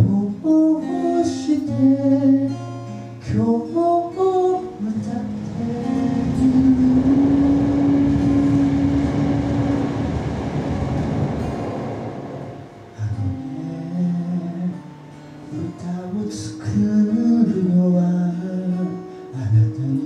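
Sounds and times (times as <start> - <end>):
acoustic guitar strumming: 0.0 - 20.0.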